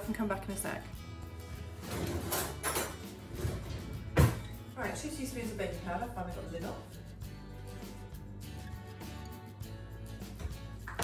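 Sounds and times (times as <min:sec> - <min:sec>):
background music: 0:00.0 - 0:11.0
kitchen drawer sliding open: 0:01.8 - 0:04.4.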